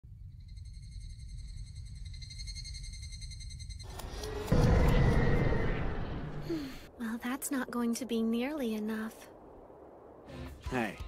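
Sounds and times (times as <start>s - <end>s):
faint high ringing tone: 0.1s - 5.8s
low rumble: 3.0s - 10.6s
loud rushing blast: 4.4s - 6.9s.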